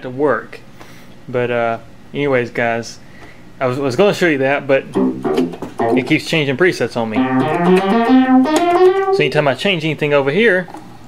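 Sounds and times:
analog synthesizer notes: 0:04.9 - 0:06.2, 0:07.1 - 0:09.4.

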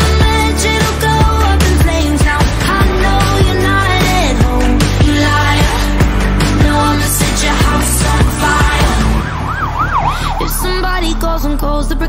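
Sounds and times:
person singing: 0:00.0 - 0:09.2, 0:10.1 - 0:12.0
sustained backing music: 0:00.0 - 0:12.0
wailing siren effect: 0:08.7 - 0:11.4.

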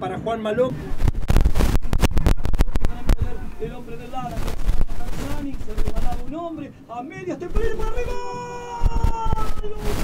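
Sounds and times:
man's voice: 0:02.8 - 0:10.0.

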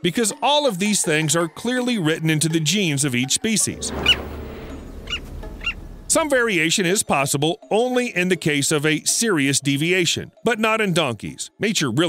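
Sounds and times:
low steady rumble: 0:03.6 - 0:06.6.

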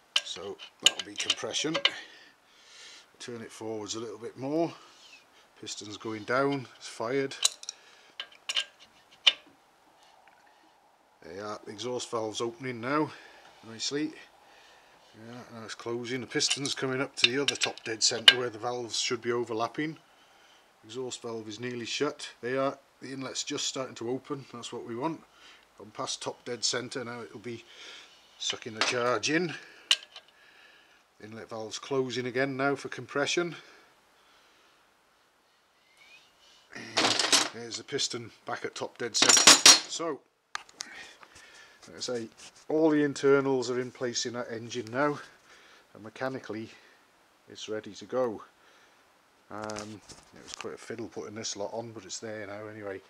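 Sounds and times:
faint room hiss: 0:00.0 - 0:53.0.

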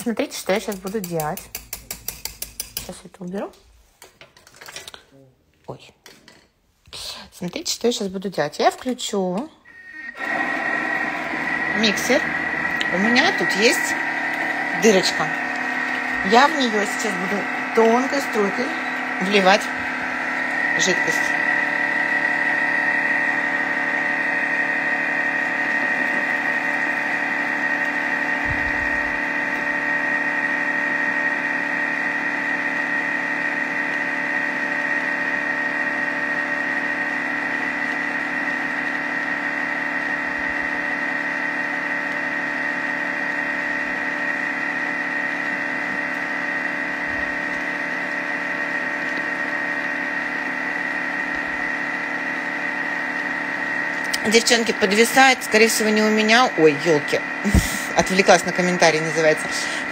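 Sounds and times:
kitchen machine motor whine: 0:08.8 - 0:59.9.

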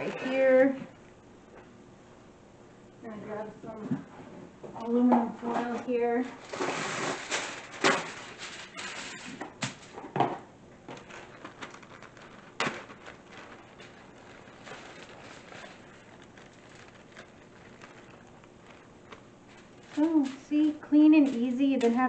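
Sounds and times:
aluminum foil crinkling: 0:04.9 - 0:22.0
plastic bag rustling: 0:05.4 - 0:22.0
crushed nuts shaken out: 0:06.4 - 0:10.0, 0:10.9 - 0:22.0.

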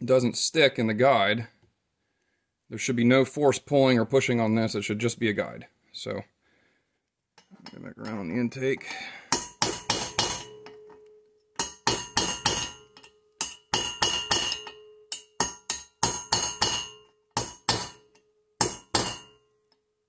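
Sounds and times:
hammer tapping steel punch: 0:08.8 - 0:19.5.

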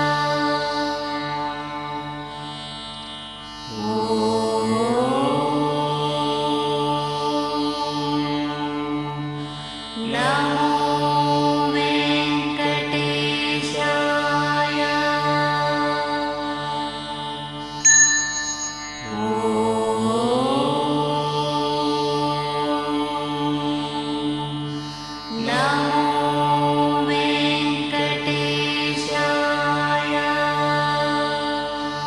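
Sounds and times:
steady drone: 0:03.6 - 0:32.0
devotional music: 0:10.2 - 0:32.0.

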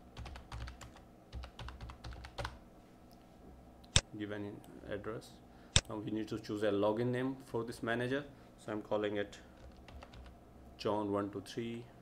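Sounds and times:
keyboard typing: 0:00.2 - 0:02.6, 0:09.6 - 0:10.3.

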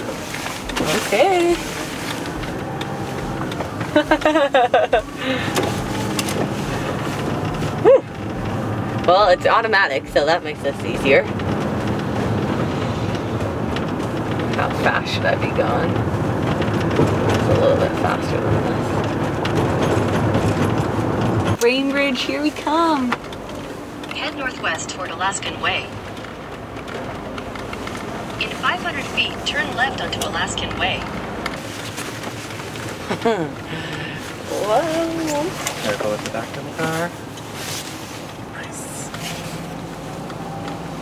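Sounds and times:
van engine and road rumble: 0:00.0 - 0:41.0.

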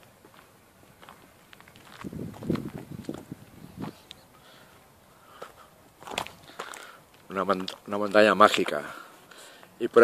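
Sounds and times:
footsteps on stony dirt path: 0:00.0 - 0:10.0.

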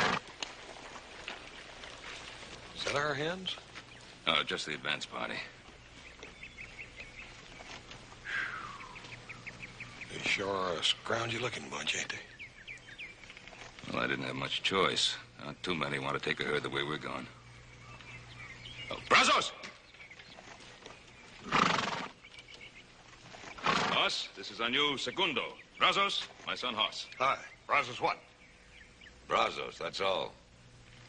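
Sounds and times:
horse fluttering call: 0:00.0 - 0:00.4, 0:21.4 - 0:22.2, 0:23.4 - 0:24.3
faint bird chirps: 0:02.9 - 0:14.4.

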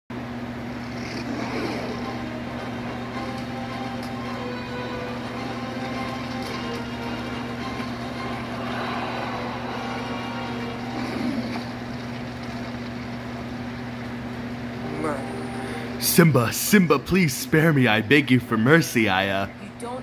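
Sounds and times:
low drone with held tones: 0:01.4 - 0:12.4, 0:14.7 - 0:18.0.

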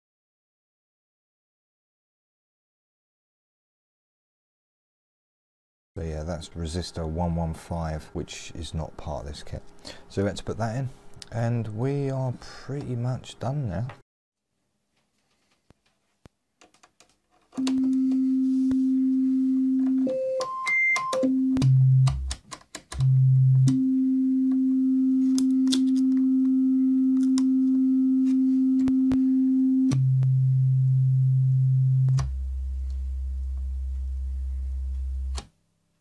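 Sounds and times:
oscillator tone jumping octaves: 0:23.0 - 0:35.4.

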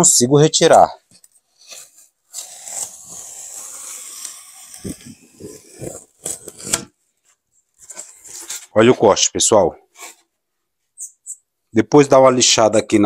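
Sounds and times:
knife scraping through foam: 0:01.5 - 0:06.9.

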